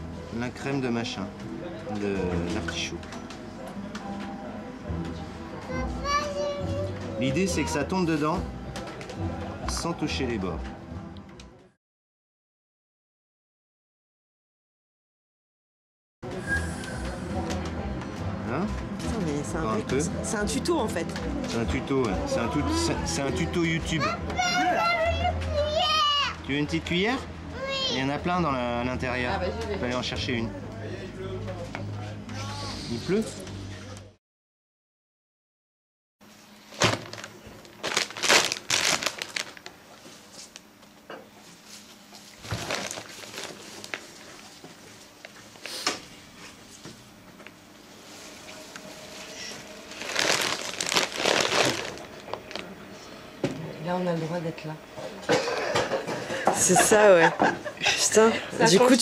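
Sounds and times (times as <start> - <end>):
child calling and talking: 5.6 - 7.8, 24.0 - 26.4, 27.5 - 28.1.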